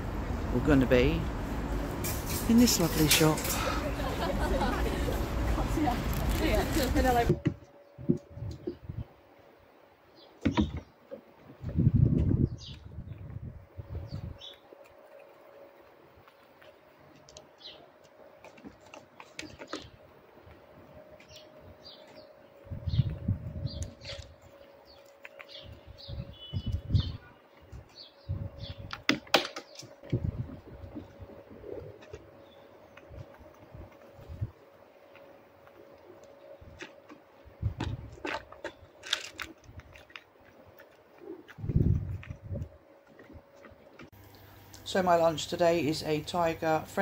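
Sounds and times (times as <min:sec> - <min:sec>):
small birds chirping: 0:07.8 - 0:11.0, 0:13.8 - 0:15.2, 0:16.2 - 0:18.0, 0:21.0 - 0:30.0, 0:30.8 - 0:37.5
squirrel chewing peanut shells: 0:38.1 - 0:42.4.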